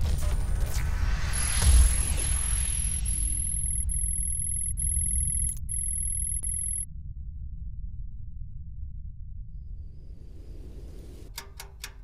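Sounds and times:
rapid high electronic beeps: 0:01.4 - 0:06.8
low rumbling drone: 0:02.6 - 0:11.3.

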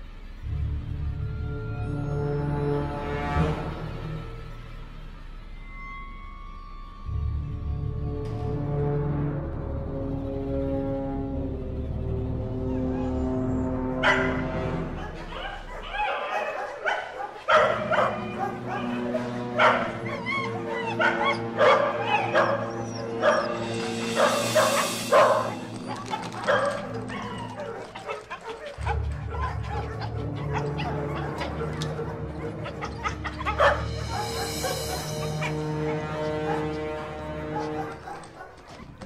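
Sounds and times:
film score music: 0:00.0 - 0:39.0
dogs barking and yelping: 0:12.3 - 0:39.0.

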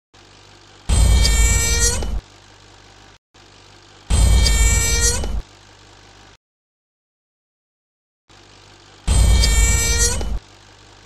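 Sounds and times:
deep rumble with high ringing tone: 0:00.9 - 0:02.2, 0:04.1 - 0:05.4, 0:09.1 - 0:10.4.

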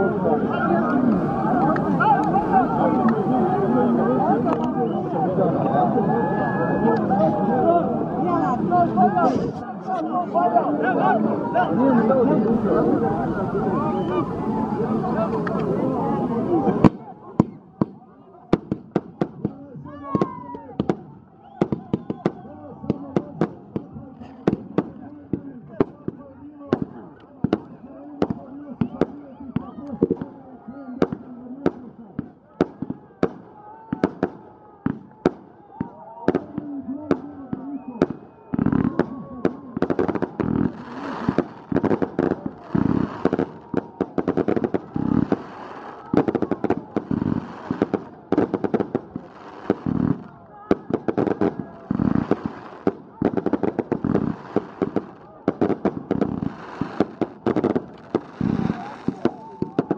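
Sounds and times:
crowd voices: 0:00.0 - 0:59.9
fireworks banging: 0:16.7 - 0:30.2, 0:31.0 - 0:59.9.

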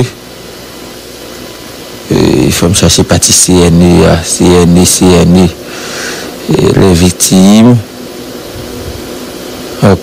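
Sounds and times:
steady background hiss: 0:00.0 - 0:10.0
man speaking: 0:02.1 - 0:05.6, 0:06.4 - 0:07.9, 0:09.8 - 0:10.0.

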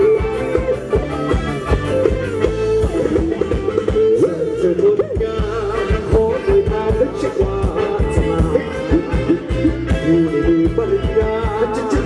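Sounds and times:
sliding lead melody: 0:00.0 - 0:12.0
steady drum beat: 0:00.0 - 0:12.0.

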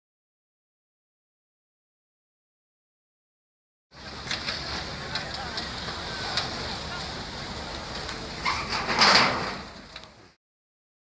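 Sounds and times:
fire crackling: 0:03.9 - 0:10.4
fire rushing surge: 0:04.0 - 0:10.4.

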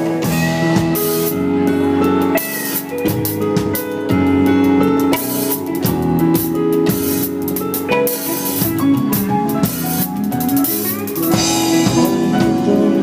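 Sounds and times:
live rock band: 0:00.0 - 0:13.0.

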